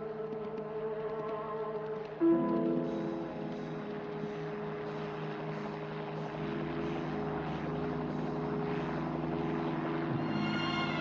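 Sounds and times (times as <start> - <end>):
helicopter engine and rotor: 0.0 - 11.0.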